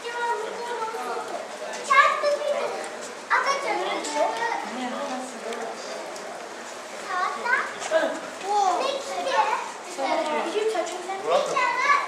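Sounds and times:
children talking and exclaiming: 0.0s - 12.0s.

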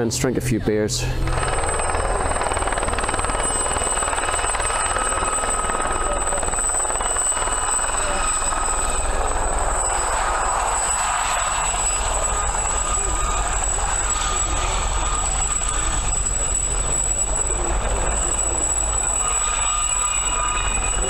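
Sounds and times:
distant helicopter: 1.0s - 21.0s
thin high whine: 1.2s - 21.0s.

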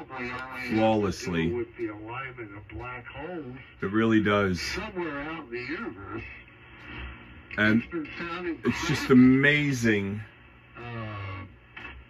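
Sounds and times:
radio hiss: 0.0s - 12.0s.

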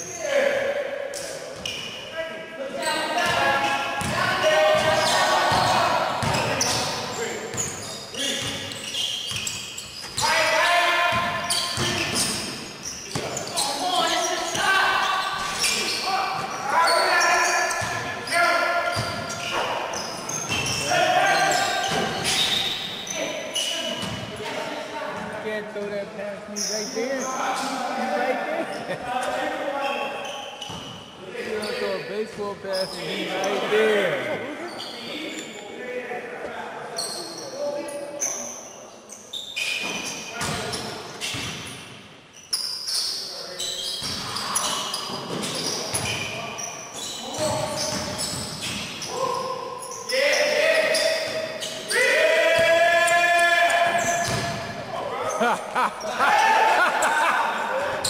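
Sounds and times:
players calling out: 0.0s - 24.5s, 43.0s - 58.0s
basketball bouncing on court: 4.0s - 7.8s, 8.4s - 8.6s, 11.1s - 12.5s, 18.9s - 19.6s, 47.4s - 49.0s, 53.9s - 54.8s.

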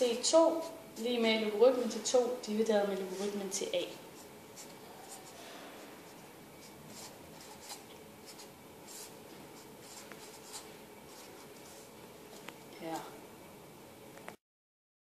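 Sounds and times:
marker scratching on paper: 0.1s - 1.5s, 3.0s - 13.1s.

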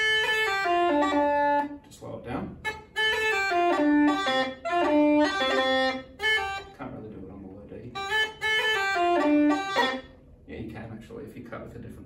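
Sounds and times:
bagpipe chanter notes: 0.0s - 1.9s, 2.6s - 7.0s, 7.9s - 10.2s.

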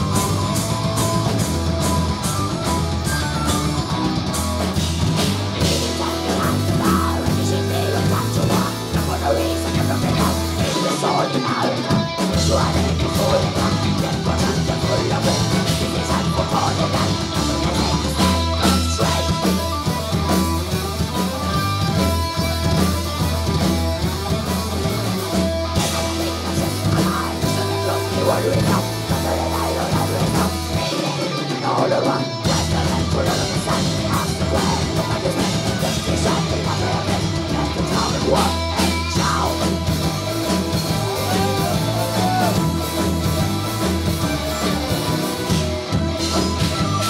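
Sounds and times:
bass guitar: 0.0s - 47.0s
distorted electric guitars: 0.0s - 47.0s
drum kit: 0.0s - 47.0s.

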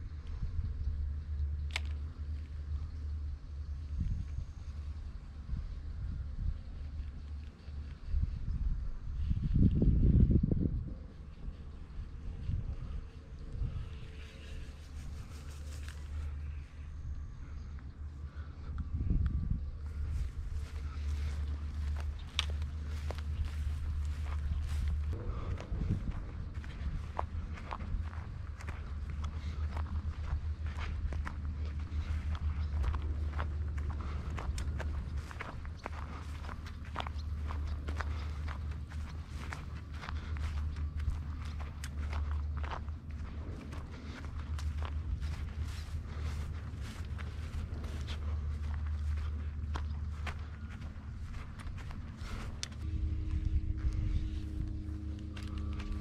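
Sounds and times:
low rumble: 0.0s - 56.0s
footsteps on gravel: 19.8s - 56.0s.

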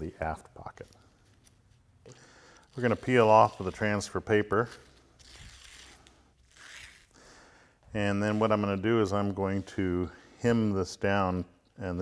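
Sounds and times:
paper liner peeling off tape: 2.5s - 7.2s.

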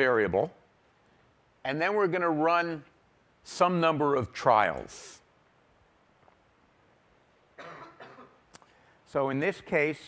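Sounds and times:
person coughing: 7.6s - 8.4s.

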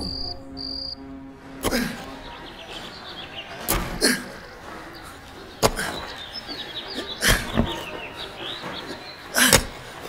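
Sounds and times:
crickets chirping: 0.0s - 1.0s
background music chord: 0.0s - 7.2s.

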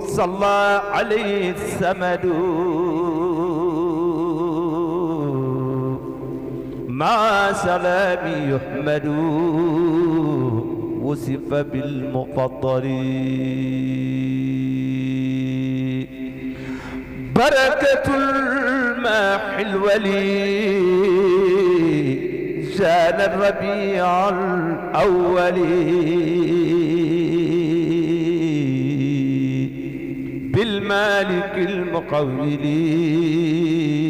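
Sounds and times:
man chanting through loudspeakers: 0.0s - 34.0s.

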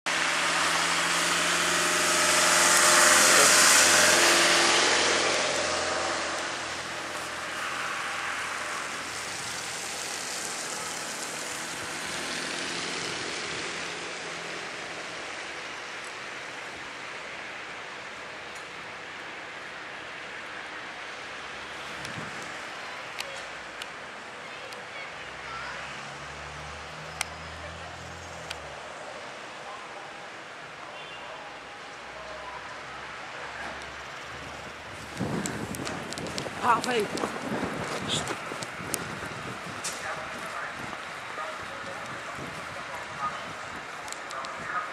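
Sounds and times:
vehicle passing on slush: 0.1s - 15.8s, 25.3s - 29.5s
traffic hiss: 0.1s - 44.9s.

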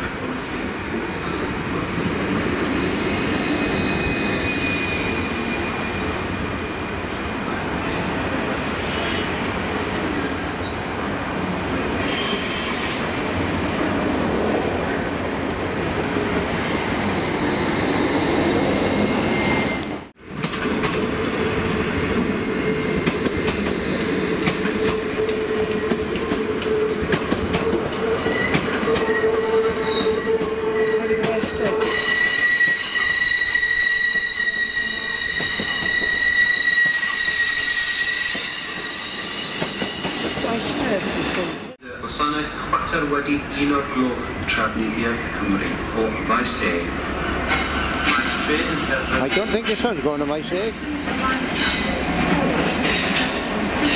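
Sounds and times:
train rumble and whine: 0.0s - 53.9s
train wheels squealing: 3.0s - 6.2s, 12.0s - 13.0s, 31.8s - 41.6s.

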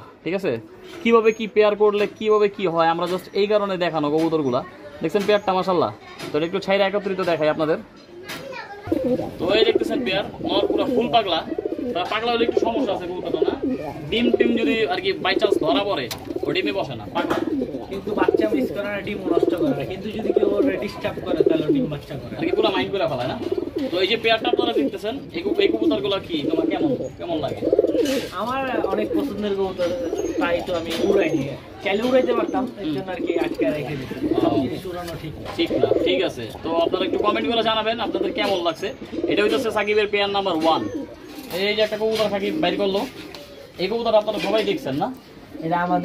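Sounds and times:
pigeons cooing: 8.8s - 46.0s.

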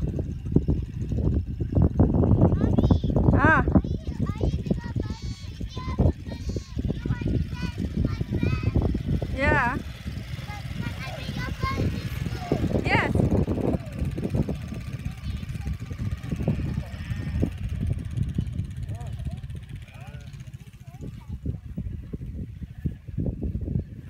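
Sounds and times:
motorcycle engine running: 0.0s - 24.0s
wind on microphone: 0.0s - 24.0s.

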